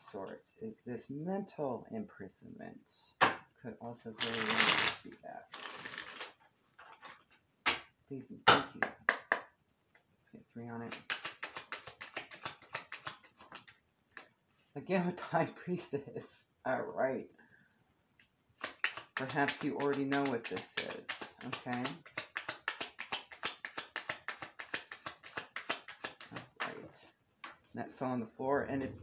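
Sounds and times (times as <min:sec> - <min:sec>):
cards being shuffled: 0:04.2 - 0:07.9, 0:10.9 - 0:14.3, 0:18.6 - 0:26.8.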